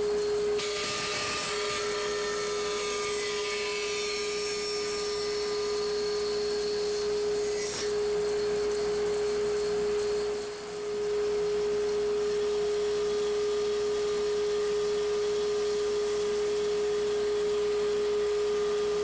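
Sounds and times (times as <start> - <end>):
saw blade cutting wood: 0.6 - 8.0
bandsaw humming: 0.6 - 9.3.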